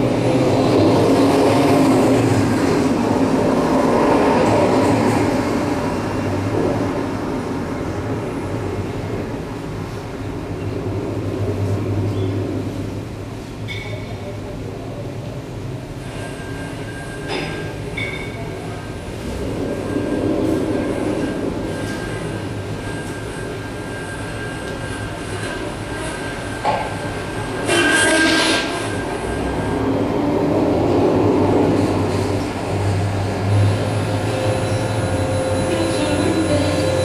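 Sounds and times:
thin high tones: 33.6 - 37.0.

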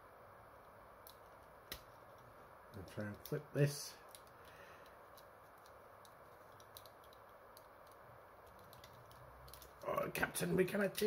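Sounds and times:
steady low hiss: 0.0 - 11.0
plastic toy parts clicking: 4.0 - 9.8.

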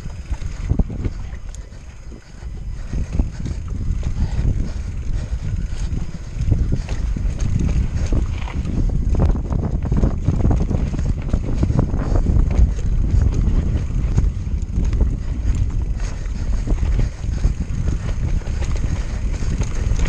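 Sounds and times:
bike rattling over stones: 0.0 - 20.0
wind buffeting microphone: 0.0 - 20.0.

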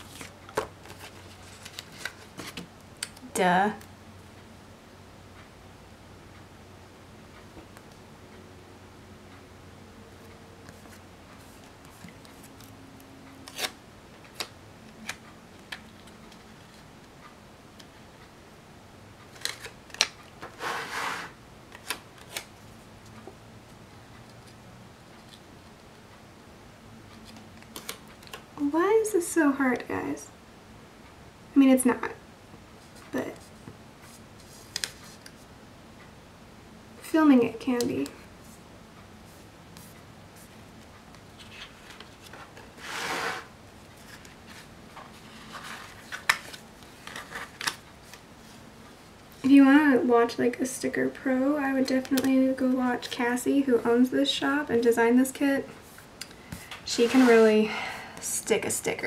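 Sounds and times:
light paper rubbing: 20.5 - 21.4, 41.4 - 46.2, 55.8 - 57.6
paper planner scraping on table: 20.5 - 21.4, 42.8 - 43.5, 56.9 - 57.5.

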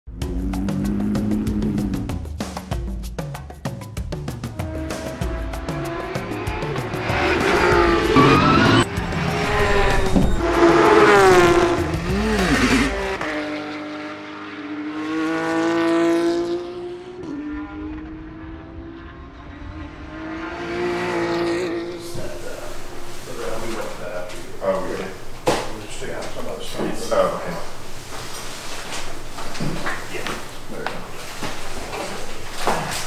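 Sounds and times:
music: 0.1 - 13.0
race car engines revving and passing: 4.5 - 26.0.

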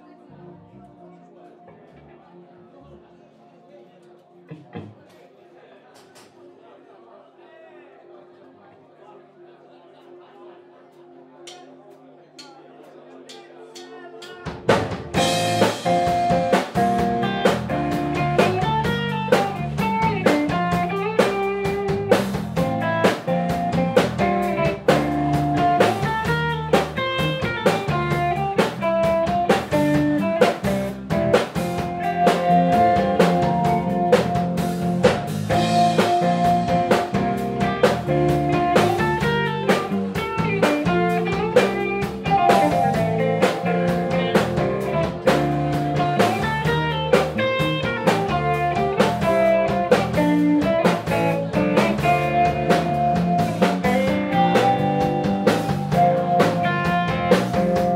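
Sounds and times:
drum kit: 13.3 - 57.9
electric guitars: 14.7 - 57.9.

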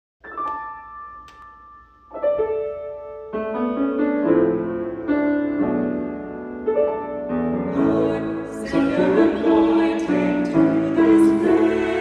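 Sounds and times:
choir singing sacred anthem: 7.7 - 12.0.

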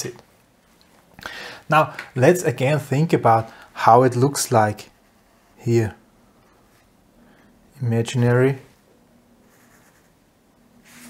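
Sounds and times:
pen scratching on paper: 9.4 - 10.2.

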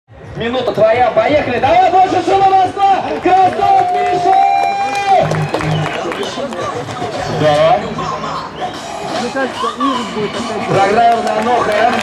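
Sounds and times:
crowd noise: 0.1 - 12.0.

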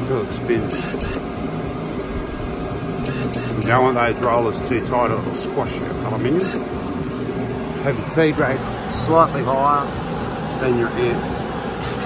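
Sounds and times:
welder humming: 0.0 - 12.0.

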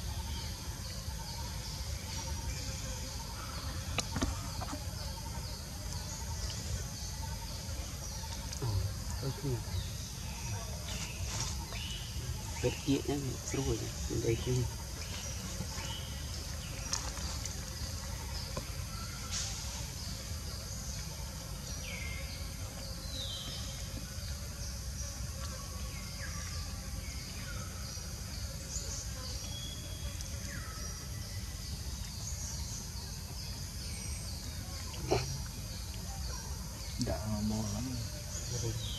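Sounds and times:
high insect drone: 0.0 - 38.9.

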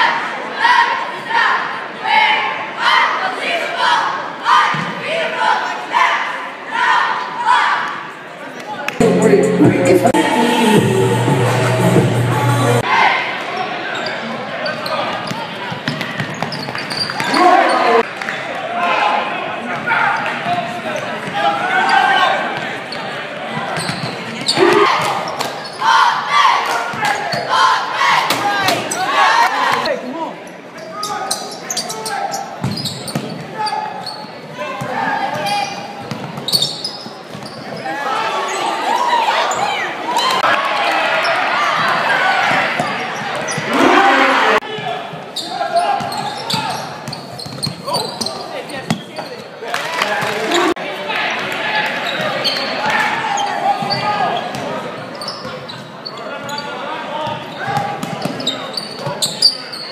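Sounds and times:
shouts and chatter: 0.0 - 16.3, 17.0 - 32.6, 37.6 - 47.0, 47.8 - 59.9.

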